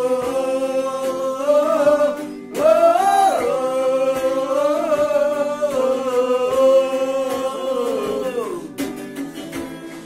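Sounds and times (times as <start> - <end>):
several voices singing: 0.0 - 8.8
acoustic guitar strumming: 0.0 - 10.0.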